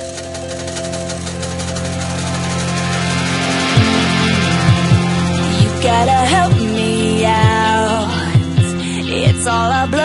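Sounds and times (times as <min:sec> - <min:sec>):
pop-rock instrumental music: 0:00.0 - 0:10.0.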